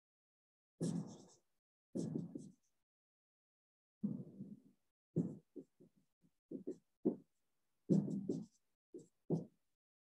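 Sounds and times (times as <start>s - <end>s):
marker writing on whiteboard: 0.8s - 2.8s, 5.2s - 9.6s.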